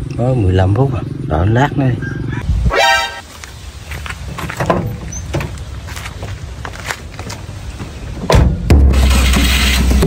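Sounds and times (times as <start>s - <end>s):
upward sweeping tone: 2.5s - 3.3s.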